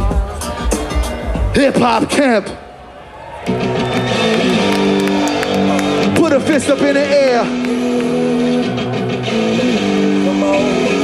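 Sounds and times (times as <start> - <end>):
hip-hop backing track over pa: 0.0 - 2.2.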